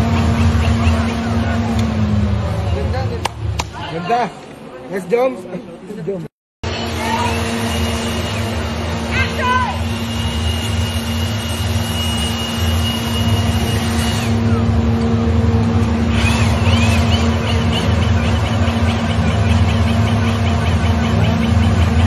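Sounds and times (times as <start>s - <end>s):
steady machine hum: 0.0s - 3.6s, 6.6s - 22.0s.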